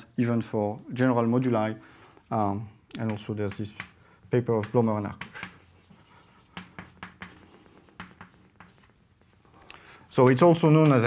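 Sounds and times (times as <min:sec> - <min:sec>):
chalk tapping and scraping: 0:03.0 - 0:09.4.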